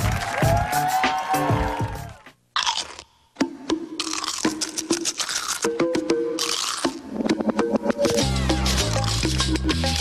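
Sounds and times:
crisp crunch: 0:02.6 - 0:03.1, 0:04.0 - 0:05.8, 0:06.4 - 0:07.0.

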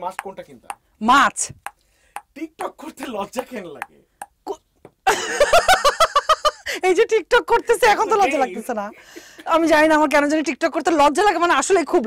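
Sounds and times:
people laughing: 0:05.1 - 0:06.7.

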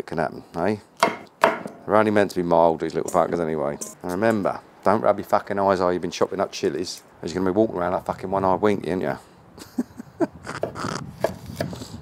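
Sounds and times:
knife chopping on wooden board: 0:01.0 - 0:01.8, 0:10.6 - 0:11.8.

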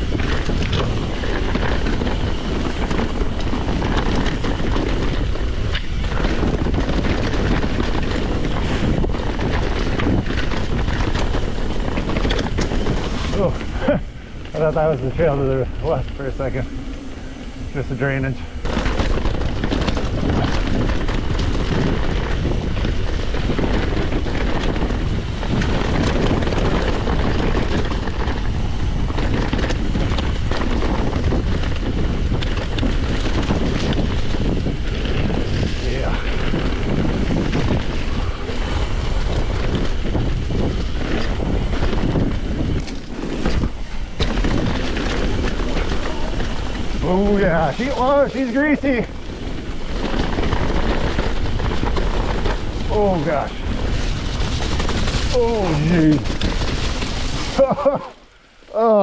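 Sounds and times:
mountain bike rattling: 0:00.0 - 0:59.0
wind buffeting microphone: 0:00.0 - 0:59.0.

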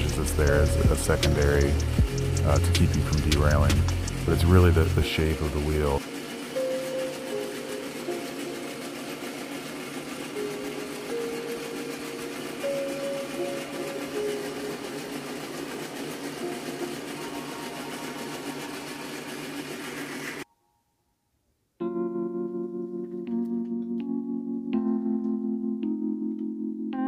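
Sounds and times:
metal lathe cutting: 0:00.0 - 0:20.4.

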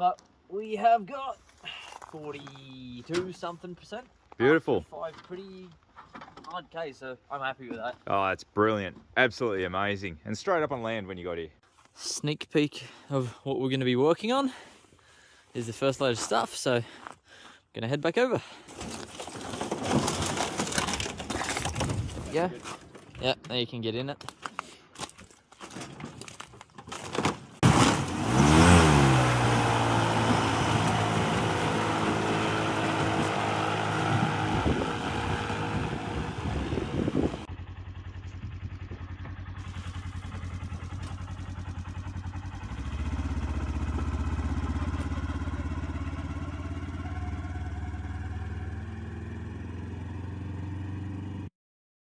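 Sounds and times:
airboat propeller spinning: 0:29.2 - 0:37.5.

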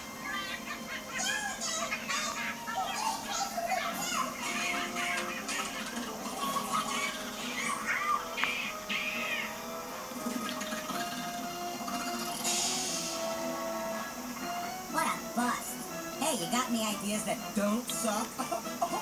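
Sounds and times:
television music with steady tones: 0:00.0 - 0:19.0.

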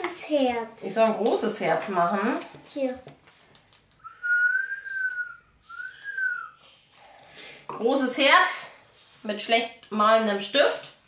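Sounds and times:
person whistling long notes: 0:04.0 - 0:06.6.

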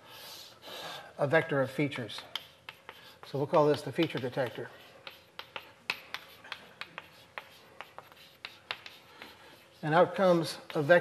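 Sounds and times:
chalk tapping and scraping on blackboard: 0:01.4 - 0:11.0.

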